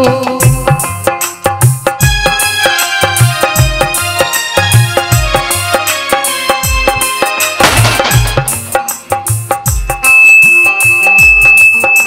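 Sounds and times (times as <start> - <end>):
harmonium: 0.0 - 10.0
dholak drum: 0.0 - 12.0
steady high-pitched tone: 9.8 - 12.0.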